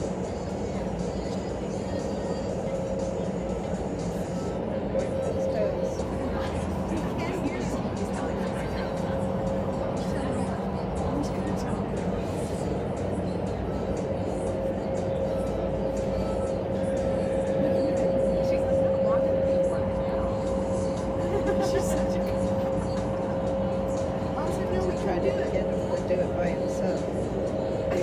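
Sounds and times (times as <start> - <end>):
wind tunnel fans rushing air: 0.0 - 28.0.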